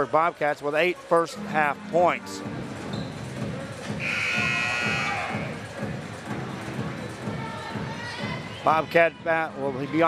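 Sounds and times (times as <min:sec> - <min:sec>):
crowd chatter: 0:00.0 - 0:10.0
music: 0:01.3 - 0:10.0
scoreboard horn buzz: 0:04.0 - 0:05.2.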